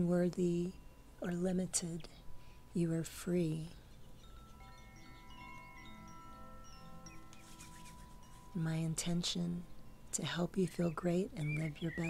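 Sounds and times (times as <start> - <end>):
faint steady tone: 0.0 - 12.0
soft chimes ringing: 0.0 - 12.0.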